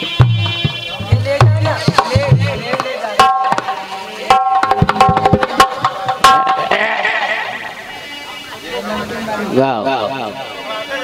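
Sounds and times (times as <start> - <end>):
hand drums: 0.0 - 7.0
harmonium chords: 0.0 - 11.0.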